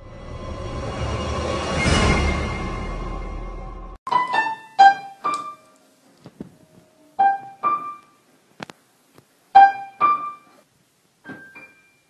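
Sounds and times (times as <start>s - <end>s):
single piano notes: 4.1s - 5.9s, 6.6s - 8.2s, 9.6s - 10.6s, 11.2s - 12.0s.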